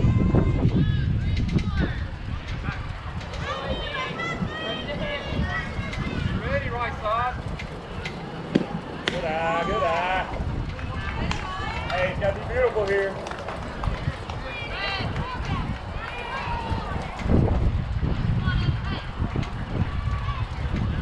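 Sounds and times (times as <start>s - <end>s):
people yelling and cheering: 0.0s - 21.0s
wind rumble on microphone: 0.0s - 21.0s
bat cracking ball: 8.5s - 9.3s.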